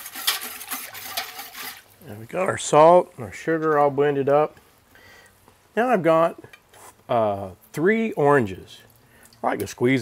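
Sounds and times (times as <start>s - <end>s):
whisk swishing liquid in pot: 0.0s - 1.9s
whisk tapping metal pot: 0.0s - 1.9s.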